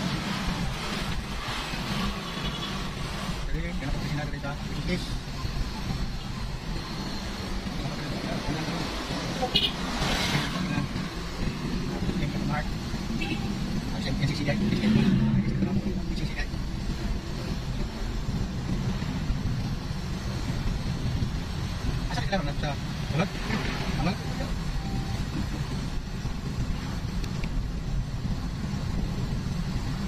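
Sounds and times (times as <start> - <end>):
car engine and road noise: 0.0 - 30.0.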